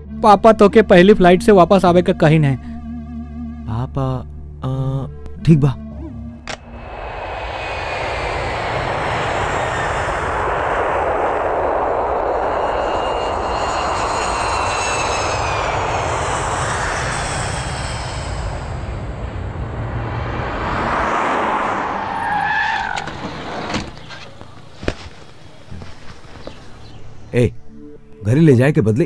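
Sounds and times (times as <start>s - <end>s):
high turbine whine: 6.3s - 28.2s
jet engine roar: 6.4s - 27.3s.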